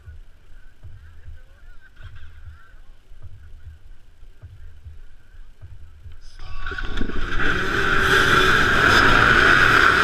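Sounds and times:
dirt bike engines idling and revving: 0.0s - 10.0s
low thumps: 0.0s - 10.0s.

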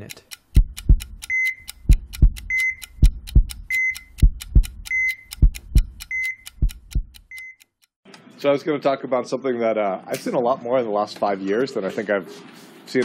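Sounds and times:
heartbeat thumps: 0.5s - 7.4s.

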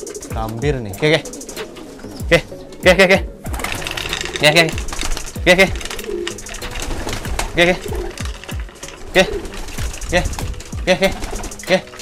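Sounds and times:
man calling: 0.0s - 1.5s, 2.1s - 12.0s
wings fluttering: 0.0s - 2.5s, 3.4s - 12.0s
pigeons cooing: 0.0s - 12.0s.

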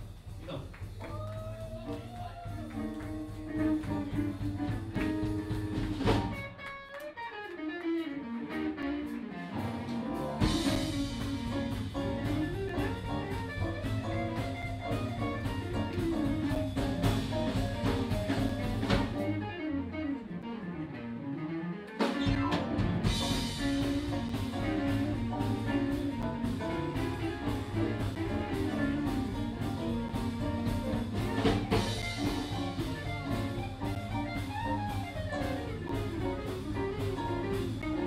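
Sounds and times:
blues band playing: 0.0s - 38.0s.

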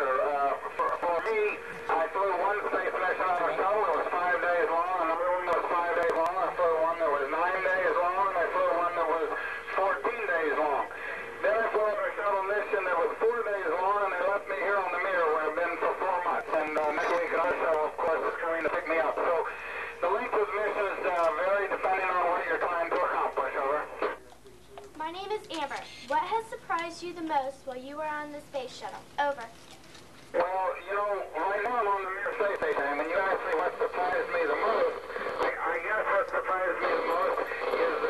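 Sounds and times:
person talking over radio loudspeaker: 0.0s - 27.1s, 30.3s - 38.0s.

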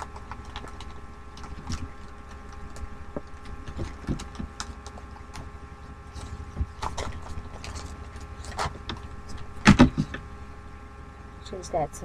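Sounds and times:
sticker sheets clicking and rustling: 0.0s - 5.5s, 6.2s - 10.2s.

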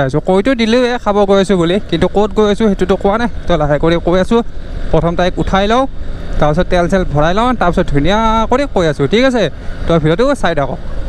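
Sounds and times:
person talking: 0.0s - 10.8s
motorcycle engine rumble: 0.0s - 11.0s.

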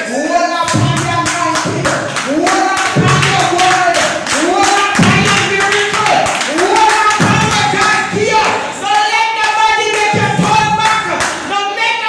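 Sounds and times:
hand clapping in time: 0.7s - 11.5s.

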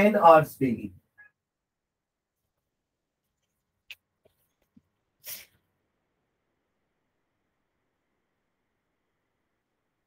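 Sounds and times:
faint room hiss: 0.0s - 10.0s
person sneezing: 5.2s - 5.6s.

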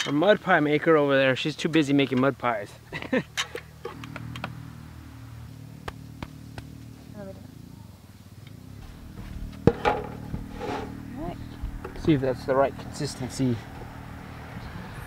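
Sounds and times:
low engine drone: 3.5s - 15.0s.

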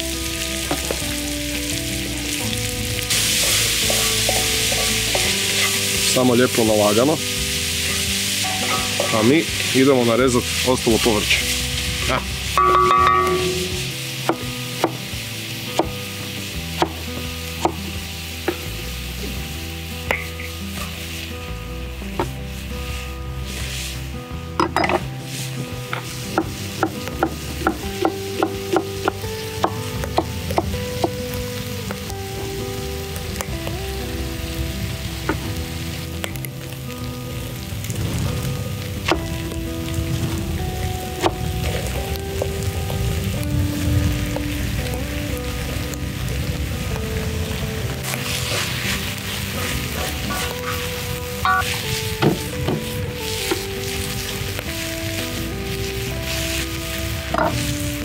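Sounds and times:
soft background music: 0.0s - 58.0s
vegetables sizzling in a wok: 0.0s - 58.0s.

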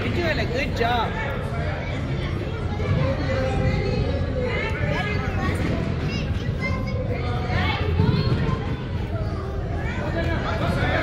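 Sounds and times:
hubbub of children and adults: 0.0s - 11.0s.

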